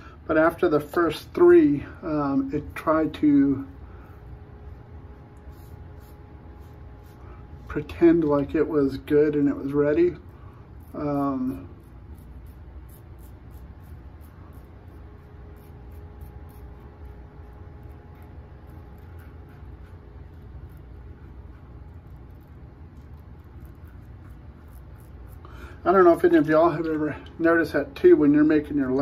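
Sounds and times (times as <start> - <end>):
steady low hum: 0.0 - 29.0
razor scraping stubble: 0.4 - 29.0.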